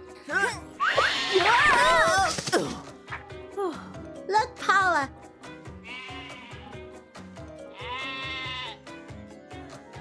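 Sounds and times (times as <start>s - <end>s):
cartoon sheep bleating: 0.8s - 2.0s, 5.8s - 6.8s, 7.7s - 8.8s
background music with steady beat: 2.3s - 10.0s.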